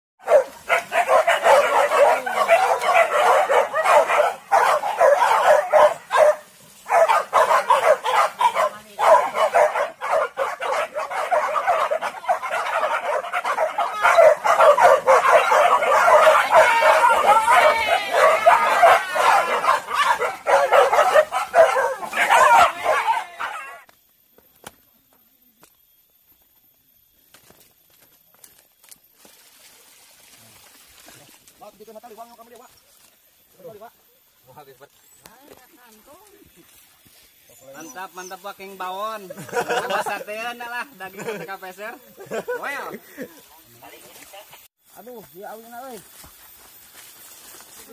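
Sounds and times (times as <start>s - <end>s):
dogs barking and yelping: 0.2s - 23.9s.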